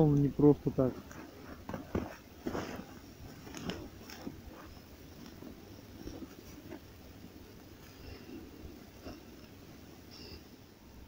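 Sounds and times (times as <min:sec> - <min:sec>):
crunching on snow: 0:00.4 - 0:07.1.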